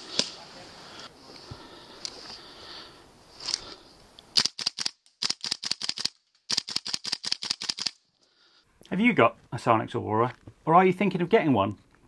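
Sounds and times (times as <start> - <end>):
airsoft gun firing: 4.4 - 8.0.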